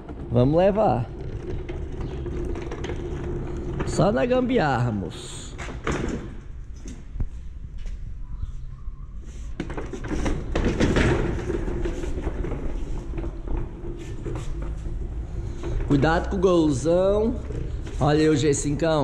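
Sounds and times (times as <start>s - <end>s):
low rumble of dragging: 0.0s - 5.6s, 6.4s - 19.0s.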